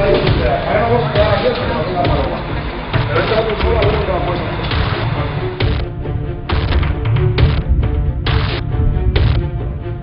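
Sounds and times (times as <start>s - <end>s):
indistinct voices talking: 0.0s - 8.7s
background music: 0.0s - 10.0s.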